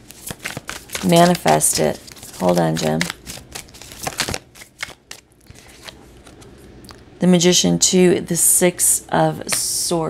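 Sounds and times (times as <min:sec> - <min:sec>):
cards flicking and rustling: 0:00.0 - 0:06.5.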